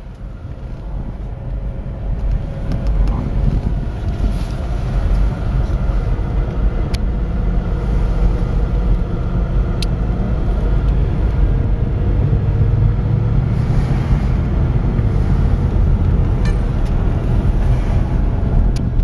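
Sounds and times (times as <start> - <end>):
car engine and tyres rumbling: 0.0 - 19.0.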